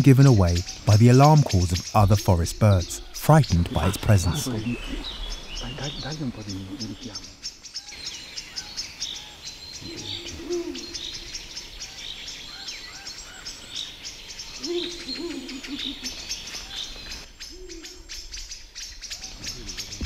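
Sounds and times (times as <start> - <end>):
owl hooting: 0.0 - 20.0
small birds chirping: 0.0 - 20.0.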